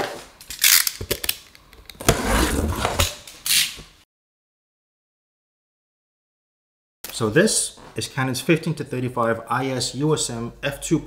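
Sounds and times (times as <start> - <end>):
cardboard box tearing and rustling: 2.0 - 3.2.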